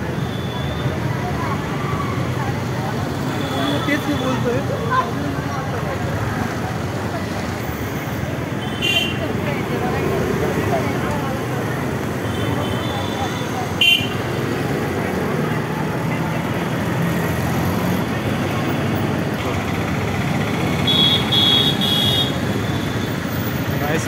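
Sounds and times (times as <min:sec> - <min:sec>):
crowd voices: 0:00.0 - 0:24.0
slow motor traffic: 0:00.0 - 0:24.0.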